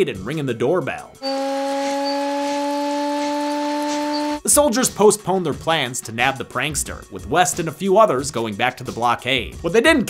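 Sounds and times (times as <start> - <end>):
loud three-tone alarm horn: 1.2 - 4.4.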